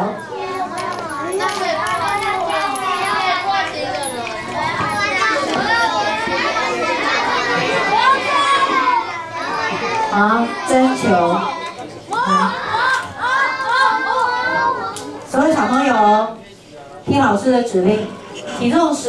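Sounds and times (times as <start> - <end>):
children talking and calling out: 0.0 - 16.6, 17.2 - 19.0.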